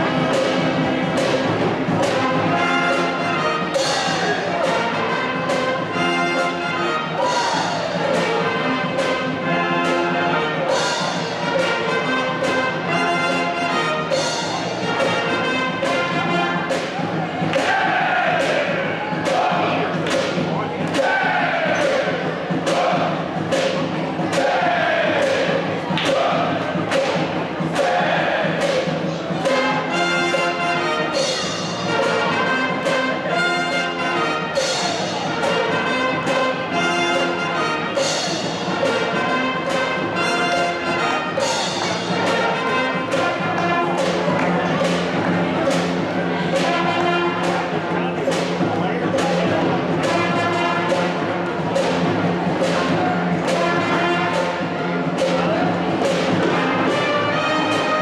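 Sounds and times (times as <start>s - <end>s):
saxophones: 0.0s - 17.2s, 20.5s - 58.0s
trumpets: 0.0s - 19.9s, 21.0s - 23.4s, 24.2s - 48.3s, 49.2s - 58.0s
drum kit steady beat: 0.0s - 58.0s
trombones and low brass: 0.0s - 58.0s.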